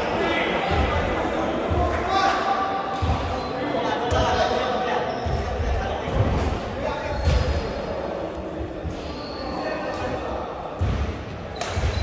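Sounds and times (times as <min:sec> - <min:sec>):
indistinct voices in hall: 0:00.0 - 0:12.0.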